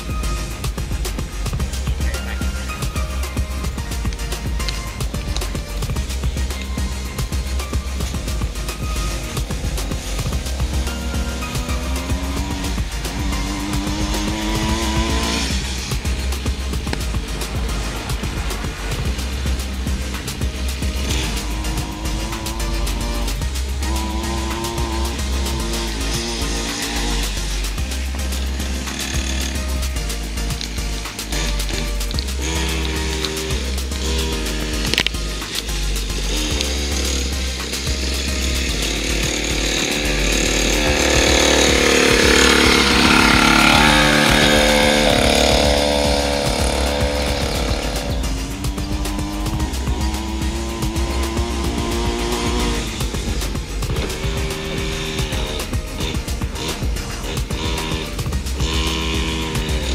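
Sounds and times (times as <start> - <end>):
background music with low beat: 0.0 - 59.9
dirt bike engine revving: 0.0 - 59.9.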